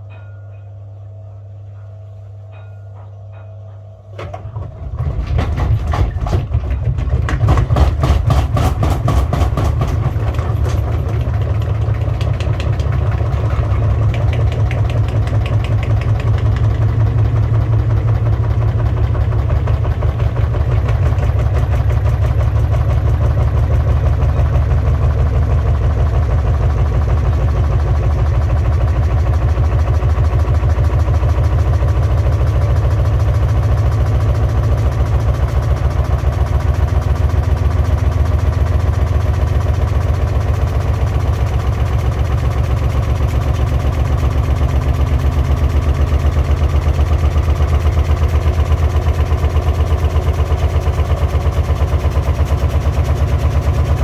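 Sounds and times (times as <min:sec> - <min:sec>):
washing machine drum spinning: 0:04.2 - 0:54.0.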